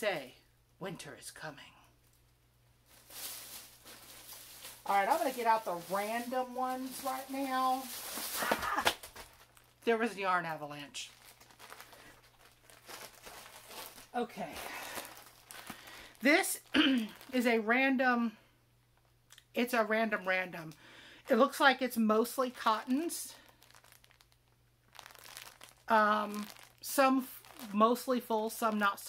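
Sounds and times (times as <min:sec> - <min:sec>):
plastic bags crinkling: 0:02.0 - 0:17.7, 0:21.2 - 0:29.0.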